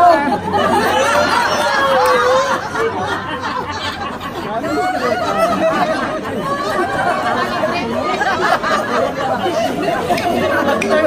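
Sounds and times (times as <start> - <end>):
women chattering: 0.0 - 11.0
women laughing: 0.0 - 11.0.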